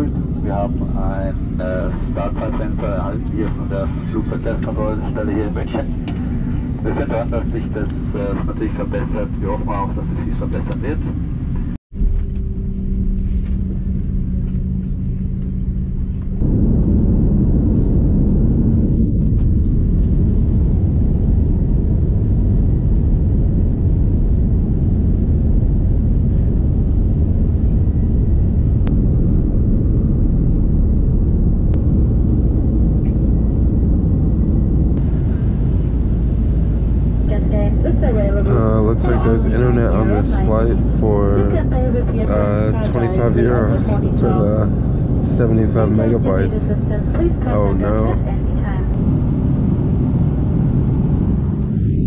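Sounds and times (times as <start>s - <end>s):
droning cabin hum: 0.0s - 52.0s
jet engine cabin roar: 0.0s - 52.0s.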